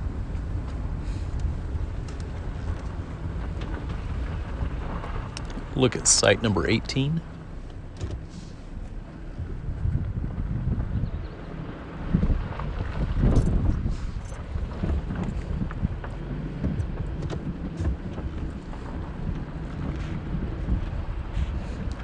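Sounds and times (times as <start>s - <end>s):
vehicle running: 0.0s - 22.0s
wind buffeting microphone: 0.0s - 22.0s.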